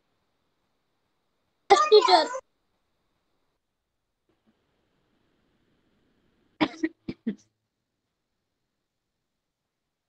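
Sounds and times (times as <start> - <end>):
person coughing: 6.6 - 7.5.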